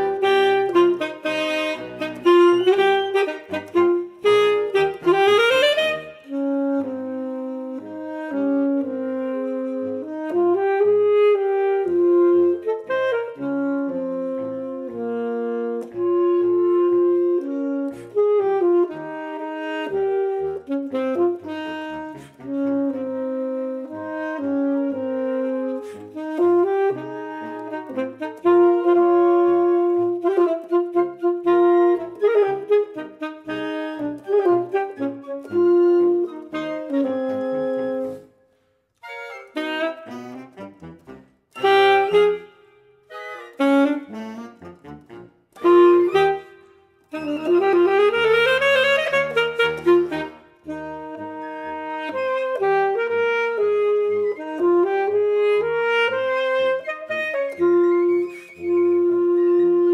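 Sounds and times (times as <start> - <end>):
alto saxophone playing march: 0.0 - 59.9.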